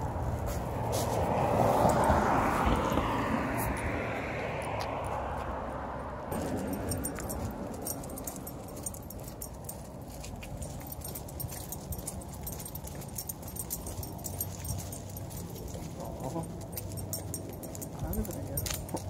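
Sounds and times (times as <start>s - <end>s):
metal chain collar jingling: 6.3s - 19.0s.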